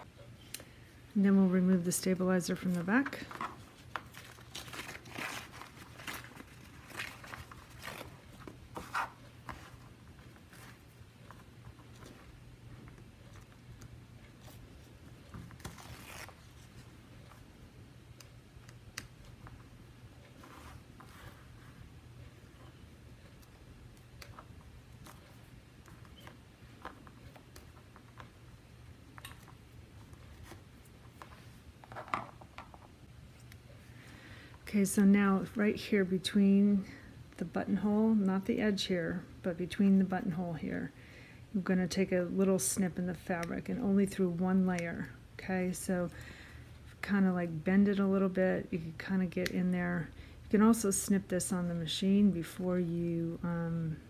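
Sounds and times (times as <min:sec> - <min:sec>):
papery ripping of stabilizer: 0:04.1 - 0:08.1, 0:15.6 - 0:16.6.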